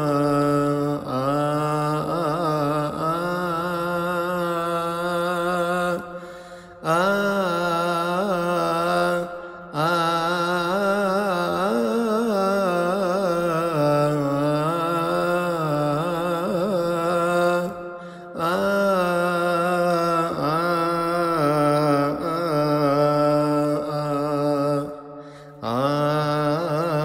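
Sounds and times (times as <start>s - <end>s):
man singing unaccompanied chant: 0.0s - 27.0s.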